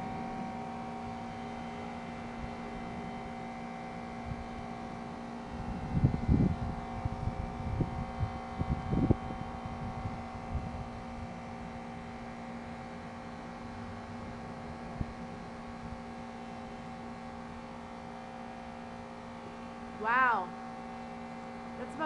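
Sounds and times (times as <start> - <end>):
steady electrical hum: 0.0 - 22.0
wind buffeting microphone: 5.5 - 11.4.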